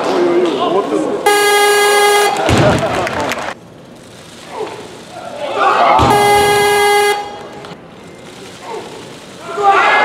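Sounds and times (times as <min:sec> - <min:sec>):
electronic buzzer tone: 0:06.1 - 0:07.4.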